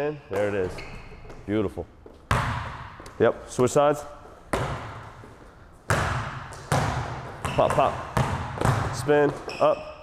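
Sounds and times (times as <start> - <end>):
basketball bouncing on court floor: 2.1 - 3.2, 4.5 - 9.6.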